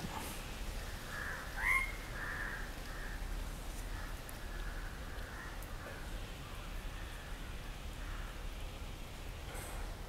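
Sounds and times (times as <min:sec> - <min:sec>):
low steady hiss and hum: 0:00.0 - 0:10.0
faint bird call: 0:01.1 - 0:03.2.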